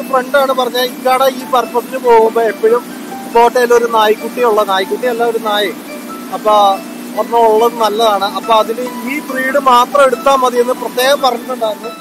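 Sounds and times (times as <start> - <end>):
boat motor humming: 0.0 - 12.0
man talking: 0.0 - 12.0.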